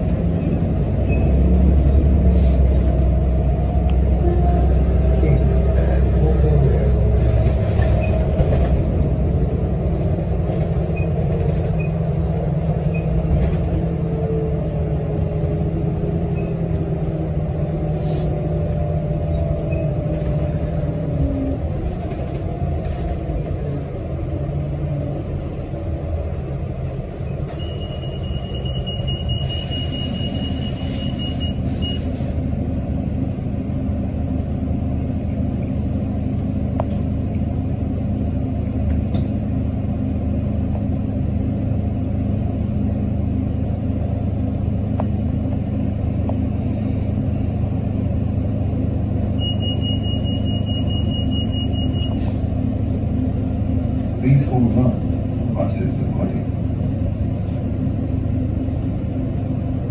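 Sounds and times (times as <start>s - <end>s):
bus engine and road rumble: 0.0s - 59.9s.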